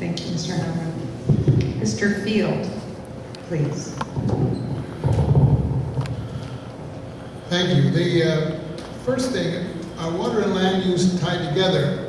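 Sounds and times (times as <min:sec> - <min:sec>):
microphone handling noise: 0:01.2 - 0:01.8, 0:04.0 - 0:06.7.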